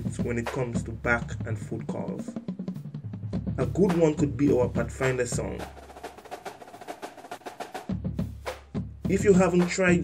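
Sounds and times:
snare drum marching cadence: 0.0 - 10.0.

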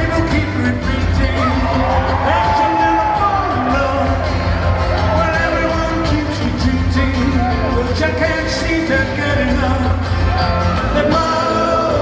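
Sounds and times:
man singing into microphone: 0.0 - 4.4, 5.1 - 12.0
rock band playing: 0.0 - 12.0.

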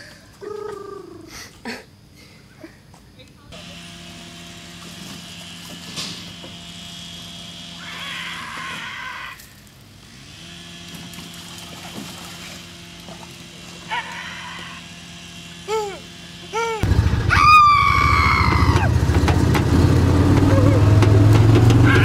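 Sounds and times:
people shrieking: 7.8 - 9.5, 13.9 - 14.9, 15.7 - 19.0, 20.4 - 21.0, 21.8 - 22.0.

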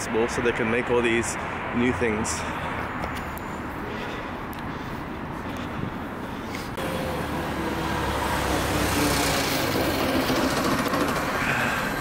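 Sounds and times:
street traffic: 0.0 - 12.0
vehicle engine rumble passing: 2.3 - 12.0.

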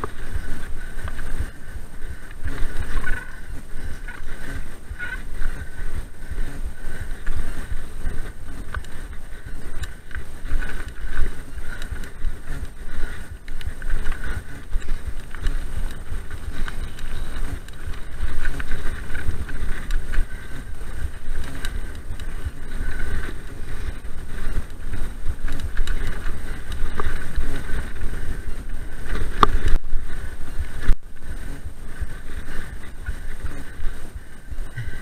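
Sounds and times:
bike rattling: 0.0 - 35.0
bike tyres rumbling: 0.0 - 35.0
wind buffeting microphone: 0.0 - 35.0.

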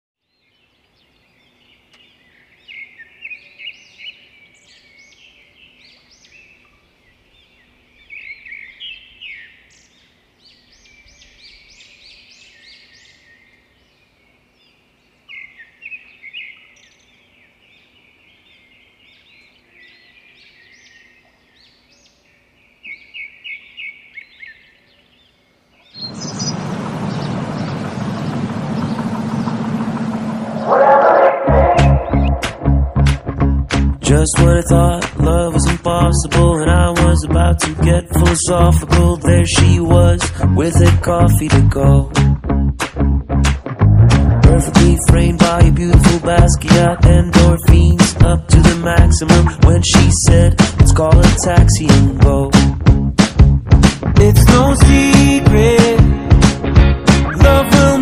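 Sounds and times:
birds chirping and singing: 0.3 - 33.3
loud steady rushing noise: 26.0 - 33.5.

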